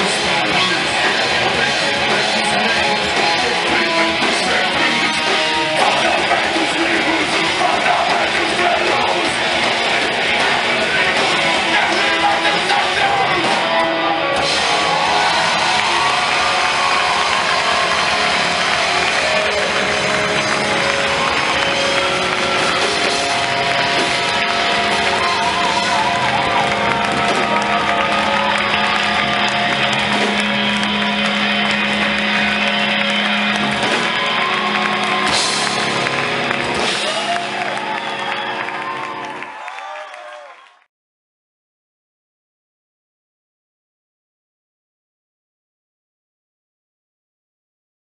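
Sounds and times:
live rock band playing: 0.0 - 39.6.

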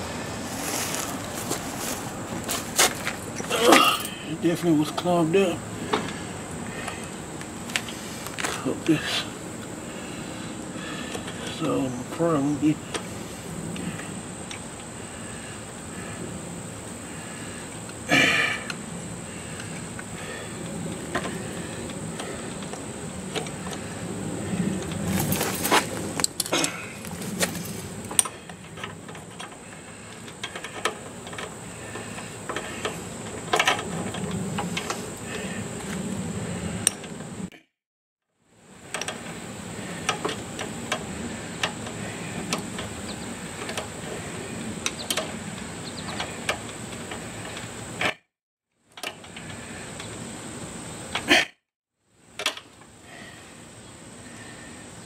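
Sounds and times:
background hiss: 0.0 - 37.4.

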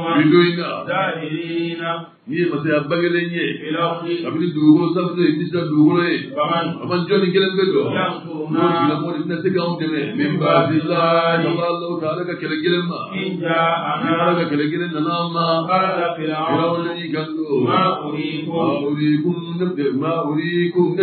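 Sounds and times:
voices chanting: 0.0 - 2.0, 2.6 - 5.6, 6.2 - 21.0.

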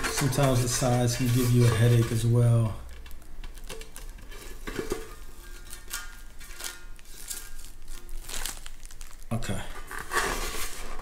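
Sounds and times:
thin metal sheet rattling: 0.0 - 2.7
plastic film crinkling: 0.0 - 11.0.

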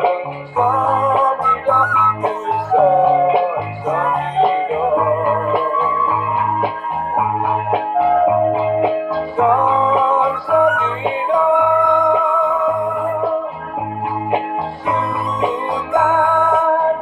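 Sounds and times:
repeating bass line: 0.0 - 17.0
bamboo flute melody: 0.7 - 13.4.

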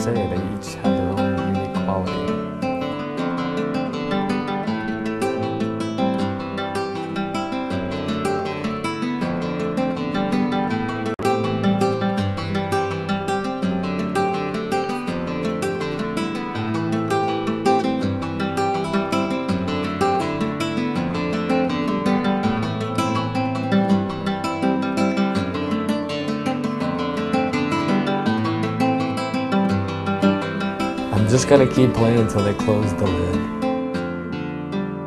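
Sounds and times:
classical guitar plucked notes: 0.0 - 35.0.

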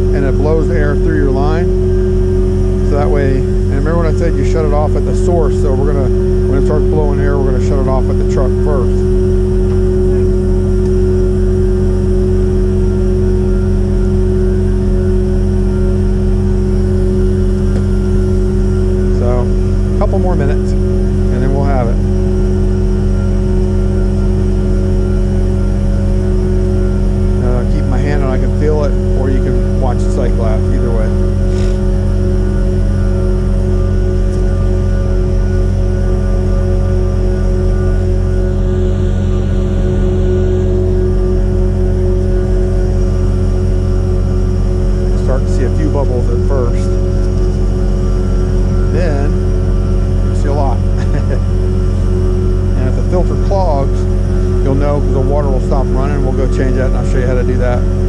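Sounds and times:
truck engine and vacuum pump drone: 0.0 - 58.0.

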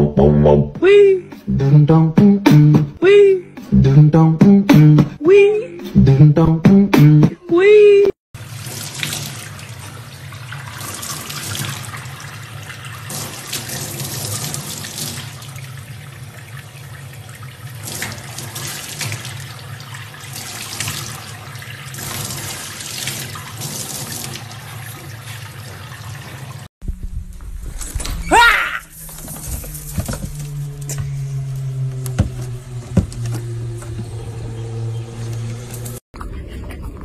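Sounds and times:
faucet water running into sink: 8.4 - 26.7.

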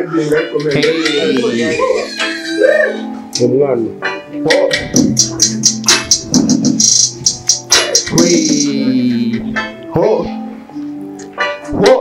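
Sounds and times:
beatboxing into a microphone: 4.5 - 9.6.

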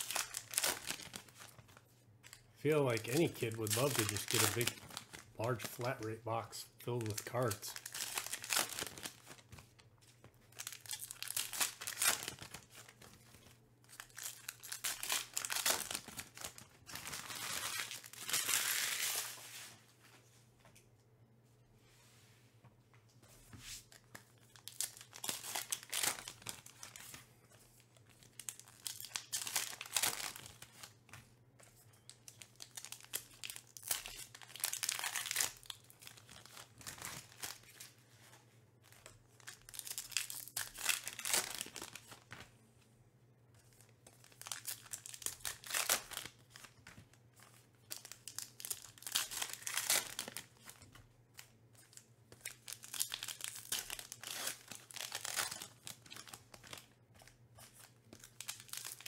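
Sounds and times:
wrappers torn and crinkled: 0.0 - 1.6, 2.2 - 6.1, 6.8 - 9.5, 10.5 - 13.1, 13.9 - 19.4, 24.4 - 27.1, 28.2 - 30.9, 32.2 - 38.0, 38.9 - 42.4, 44.2 - 46.8, 47.8 - 56.9, 57.9 - 59.0.

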